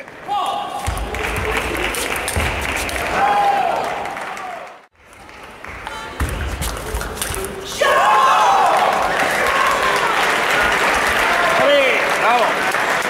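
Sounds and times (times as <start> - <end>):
spectators applauding: 0.0 - 6.2, 8.0 - 13.0.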